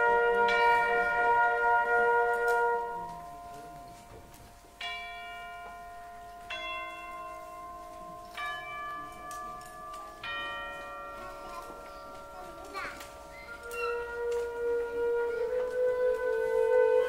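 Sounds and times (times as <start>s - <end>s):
orchestral chimes ringing: 0.0s - 14.6s.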